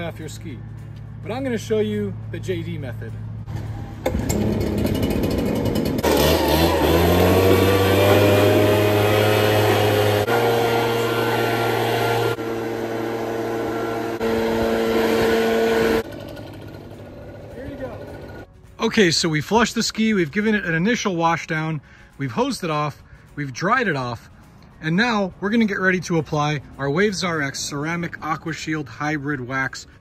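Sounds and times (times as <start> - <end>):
handheld blower running: 4.0 - 18.4.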